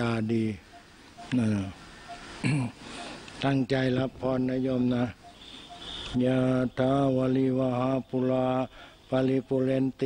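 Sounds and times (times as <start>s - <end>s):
man chanting on one pitch: 6.2s - 10.0s.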